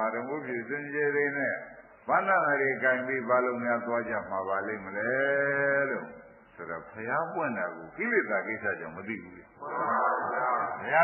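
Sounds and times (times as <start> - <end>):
man preaching: 0.0 - 11.0.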